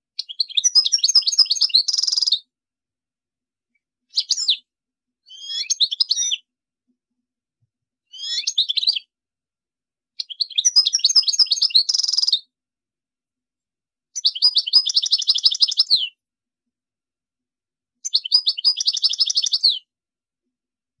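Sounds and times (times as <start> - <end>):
songbird twittering: 0.2 - 2.4, 5.3 - 6.5, 8.1 - 9.1, 10.2 - 12.4, 14.2 - 16.2, 18.0 - 19.8.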